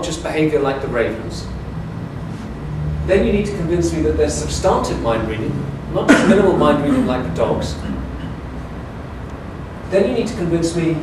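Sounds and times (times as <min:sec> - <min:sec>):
man lecturing: 0:00.0 - 0:01.5, 0:03.1 - 0:08.3, 0:09.9 - 0:11.0
low room rumble: 0:00.0 - 0:11.0.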